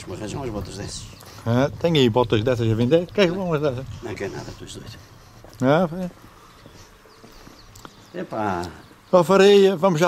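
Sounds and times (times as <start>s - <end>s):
faint footsteps on pavement: 0.0s - 10.0s.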